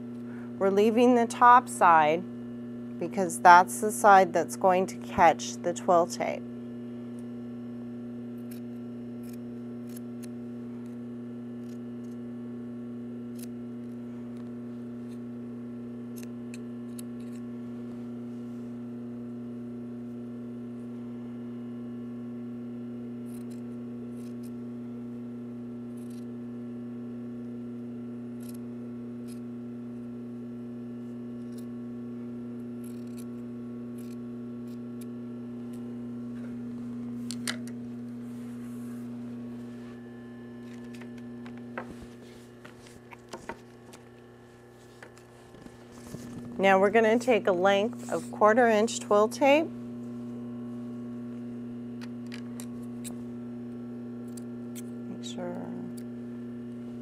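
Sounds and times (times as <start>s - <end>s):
low hum: 0.0s - 57.0s
scissors snipping fabric: 8.3s - 12.3s, 16.0s - 17.5s, 23.2s - 24.6s, 25.9s - 26.4s, 32.6s - 35.8s.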